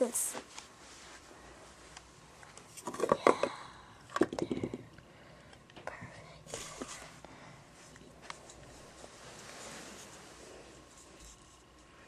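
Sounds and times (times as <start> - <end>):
person whispering: 5.8 - 6.8.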